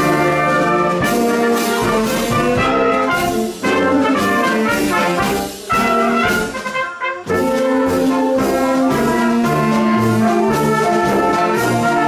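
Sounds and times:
brass and saxophone chords: 0:00.0 - 0:12.0
snare and bass drum: 0:00.0 - 0:12.0.

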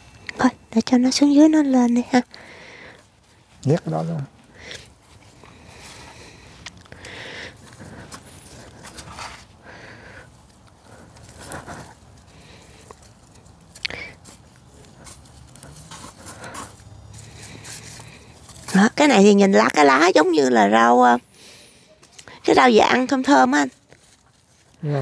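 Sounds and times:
rustling and scraping of soil: 0:00.0 - 0:25.0.

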